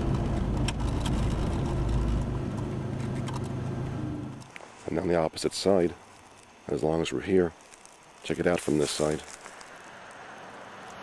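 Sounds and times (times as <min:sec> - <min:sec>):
car engine and road hum: 0:00.0 - 0:06.7, 0:08.0 - 0:11.0.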